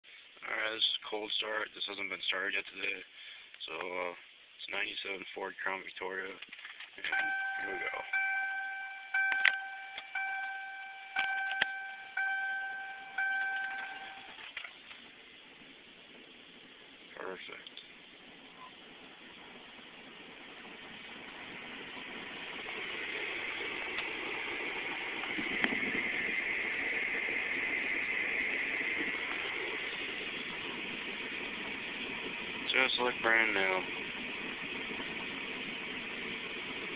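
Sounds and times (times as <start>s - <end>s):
car warning chime dinging: 7.1s - 14.4s.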